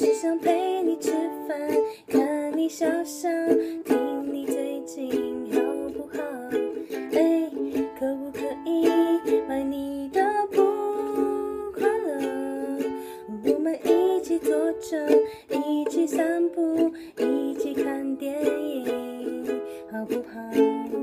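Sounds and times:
ukulele strumming chords: 0:00.0 - 0:21.0
woman singing: 0:00.0 - 0:21.0.

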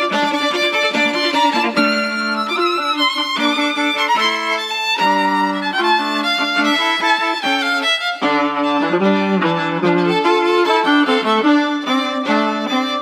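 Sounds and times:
violin playing quick melody: 0:00.0 - 0:13.0.

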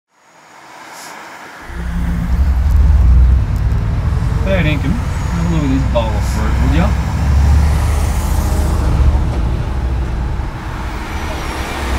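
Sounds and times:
street traffic noise: 0:00.1 - 0:11.9
motorcycle engine rumbling: 0:01.6 - 0:11.9.

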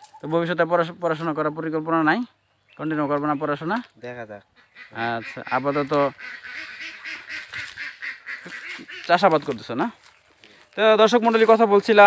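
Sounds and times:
man speaking: 0:00.1 - 0:06.2, 0:08.5 - 0:10.0, 0:10.8 - 0:12.0
ducks quacking: 0:04.4 - 0:10.0.

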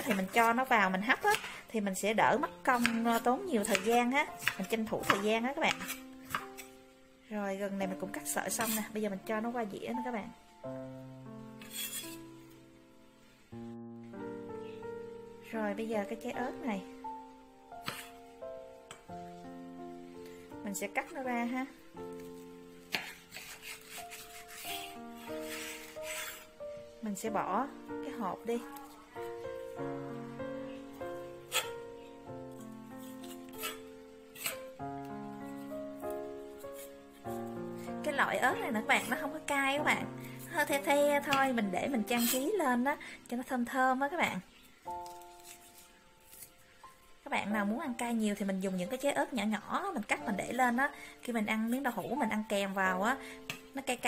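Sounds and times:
instrumental music with held notes: 0:07.9 - 0:43.1, 0:44.5 - 0:47.3
knife scraping cutting board: 0:08.6 - 0:08.9, 0:11.6 - 0:12.2, 0:17.8 - 0:18.2, 0:22.2 - 0:26.5, 0:31.5 - 0:31.8, 0:33.0 - 0:34.7, 0:36.7 - 0:36.9, 0:42.1 - 0:42.5, 0:45.0 - 0:46.5.

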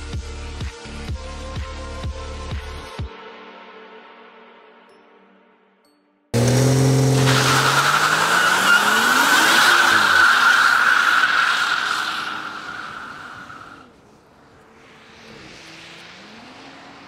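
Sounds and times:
car engine revving: 0:06.4 - 0:14.0, 0:14.6 - 0:17.0
tyre squeal: 0:07.1 - 0:13.9.

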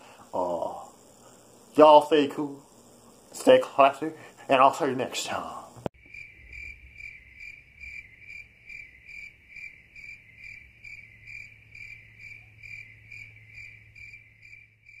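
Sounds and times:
low steady hum: 0:00.0 - 0:14.9
crickets chirping: 0:00.0 - 0:15.0.

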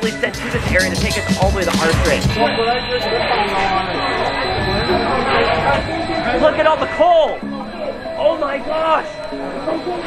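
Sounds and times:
background music: 0:00.0 - 0:05.2, 0:05.8 - 0:10.0
people talking: 0:00.0 - 0:10.0.

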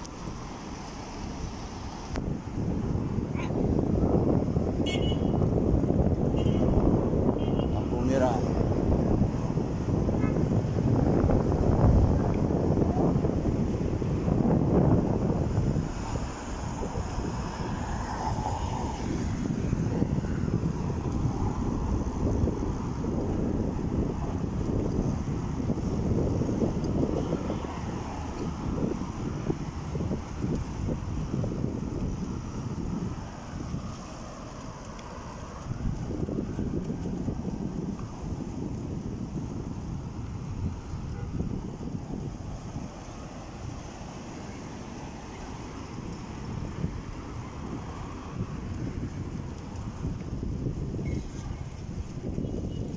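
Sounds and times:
wind buffeting microphone: 0:00.0 - 0:52.9.

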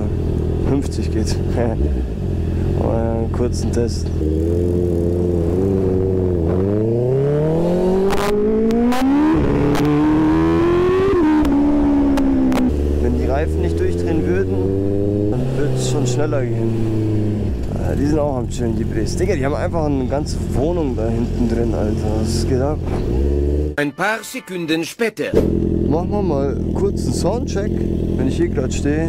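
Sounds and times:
motorcycle engine revving: 0:00.0 - 0:23.8, 0:25.4 - 0:29.0.

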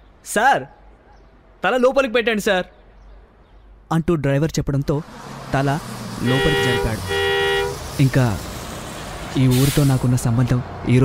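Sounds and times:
vehicle horn blasts: 0:06.2 - 0:07.8.

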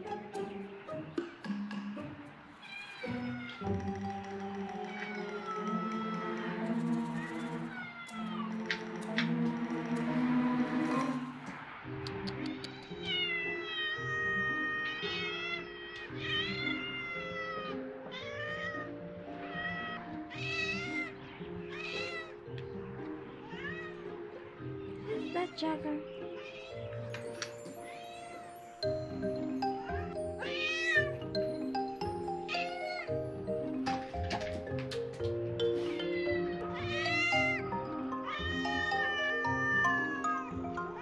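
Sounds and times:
background music: 0:00.0 - 0:41.0
cats meowing: 0:02.6 - 0:03.8, 0:04.7 - 0:06.4, 0:07.2 - 0:08.6, 0:12.1 - 0:22.4, 0:23.4 - 0:24.1, 0:25.0 - 0:28.5, 0:29.6 - 0:31.5, 0:32.4 - 0:33.2, 0:35.8 - 0:41.0.

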